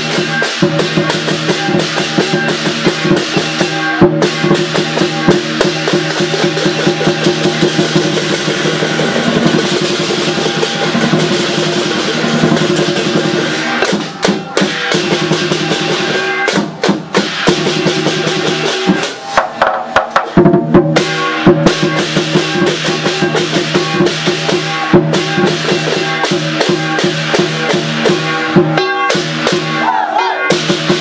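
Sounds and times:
brass cymbals clashing: 0.0 - 20.0, 20.7 - 31.0
drum beat: 0.0 - 31.0.

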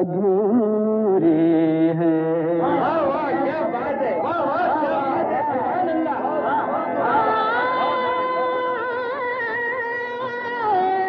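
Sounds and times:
crowd calling out together: 2.6 - 8.9.

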